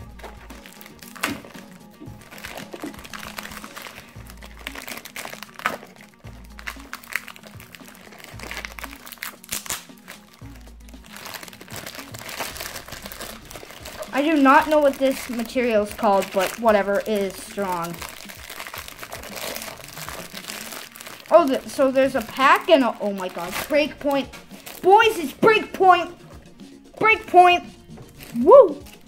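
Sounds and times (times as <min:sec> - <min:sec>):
background music with bass pulse: 0:00.0 - 0:29.0
plastic packaging crinkling: 0:00.1 - 0:25.2.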